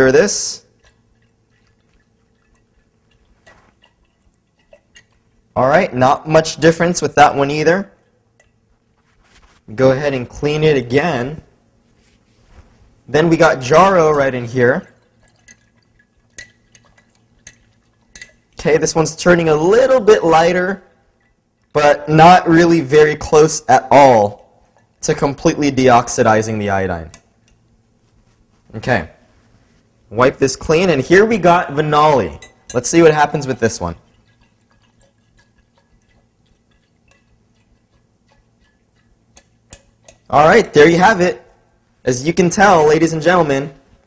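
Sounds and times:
stirrer clinking against glass jar: 0.8s - 5.4s, 14.8s - 18.6s, 32.2s - 40.4s.

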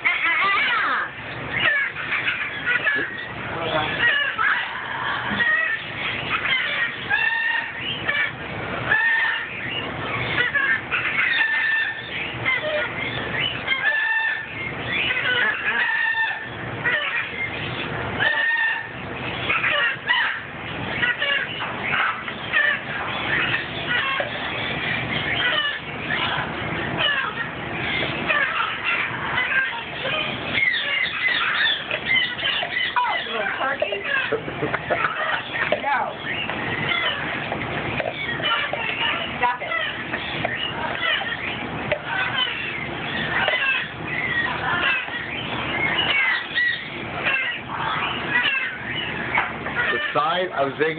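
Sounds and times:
birds chirping and whistling: 0.0s - 50.9s
macaw squawking: 0.0s - 50.9s.

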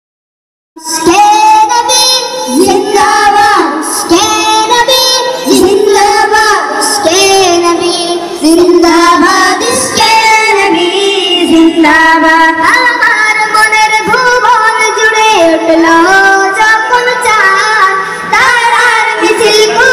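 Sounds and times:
person singing: 0.8s - 19.9s.

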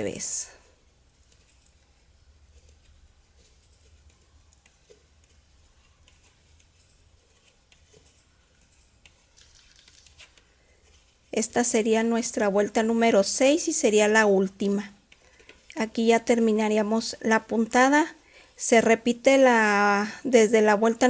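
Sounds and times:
knitting needles clicking: 1.1s - 10.4s.

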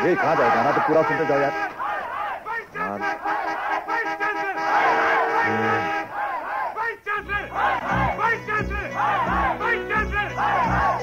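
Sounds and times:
chorus of voices chanting: 0.1s - 11.0s.

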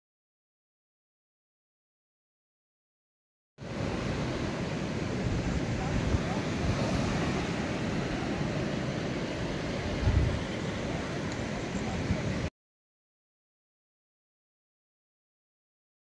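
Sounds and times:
sea surf breaking: 3.6s - 12.5s
wind rumbling on microphone: 3.6s - 12.5s.

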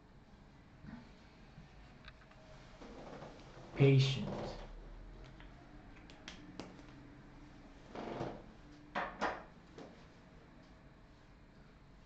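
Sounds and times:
faint clicks and handling noises: 1.8s - 2.5s, 5.2s - 7.0s.

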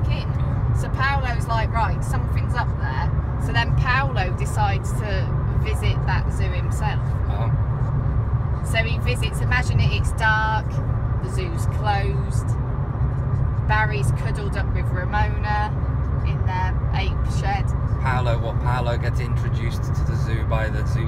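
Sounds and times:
people talking: 0.0s - 7.5s, 8.6s - 12.5s, 13.7s - 15.7s, 16.3s - 21.0s
road and engine rumble in car: 0.0s - 21.0s.

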